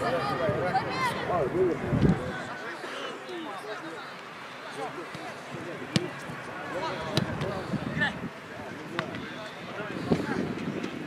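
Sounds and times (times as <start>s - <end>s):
players calling: 0.0s - 10.6s
football kick thuds: 5.9s - 6.2s.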